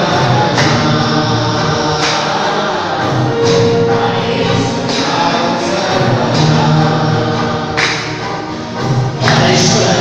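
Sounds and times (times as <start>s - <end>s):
group singing worship song: 0.0s - 10.0s
instrumental accompaniment: 0.0s - 10.0s.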